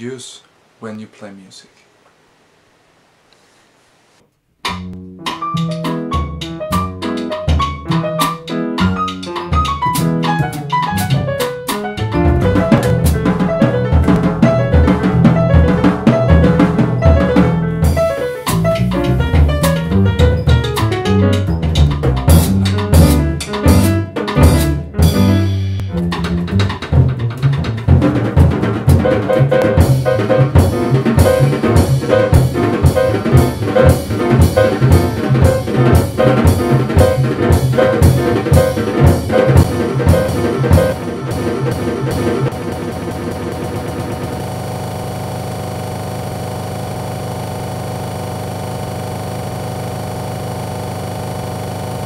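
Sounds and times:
jazz trio sustained chord: 0:05.0 - 0:26.5, 0:27.9 - 0:52.0.

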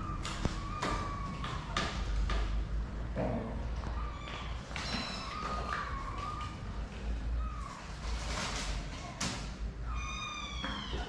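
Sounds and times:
kitten meowing: 0:00.0 - 0:01.8, 0:03.9 - 0:06.6, 0:09.8 - 0:11.0.

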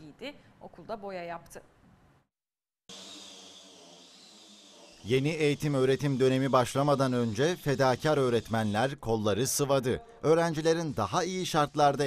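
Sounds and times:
electric disc sander on wood: 0:02.9 - 0:09.4, 0:10.4 - 0:12.0.

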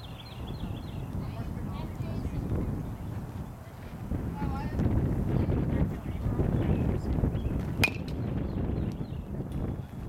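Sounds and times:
wind rumble on microphone: 0:00.0 - 0:10.0
metal bat hitting ball: 0:07.8 - 0:08.2.

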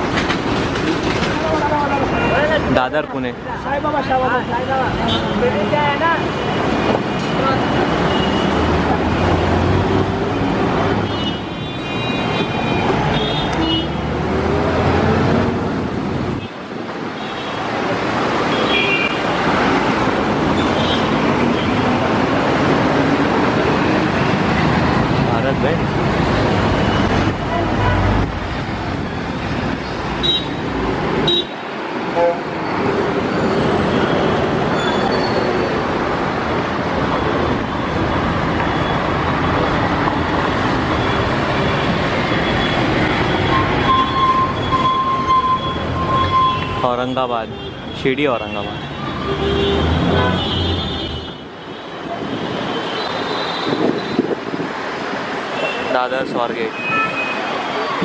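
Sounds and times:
buses and cars passing: 0:00.0 - 0:58.0.

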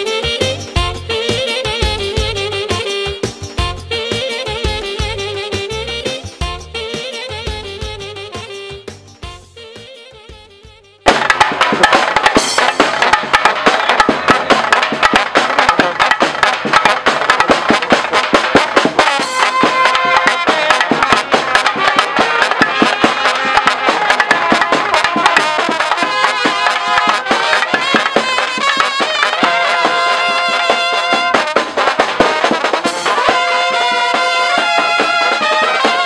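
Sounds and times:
brass band playing: 0:00.0 - 0:36.0
bass drum strikes: 0:11.1 - 0:25.8.

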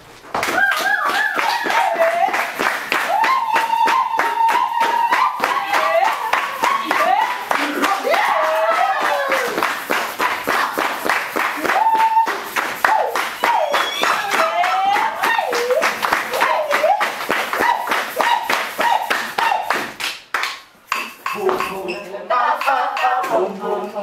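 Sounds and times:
group clapping in rhythm: 0:00.3 - 0:24.0
person singing wavering melody: 0:21.3 - 0:24.0.

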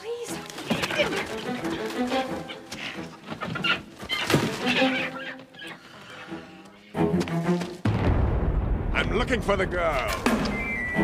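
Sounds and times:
suspenseful background music: 0:00.0 - 0:11.0
deep hit with low rumble: 0:07.9 - 0:10.4.

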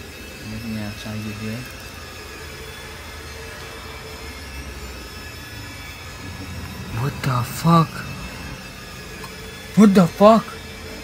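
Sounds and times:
faint humming tones: 0:00.4 - 0:11.0
steady low rumble: 0:05.4 - 0:09.7.

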